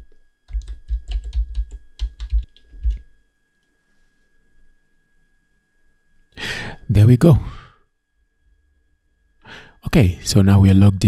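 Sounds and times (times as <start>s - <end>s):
computer keyboard typing: 0.5s - 3.0s.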